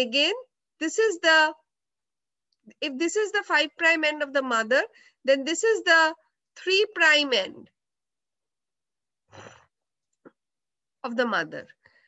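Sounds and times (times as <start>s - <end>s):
short breath: 9.3s - 9.7s.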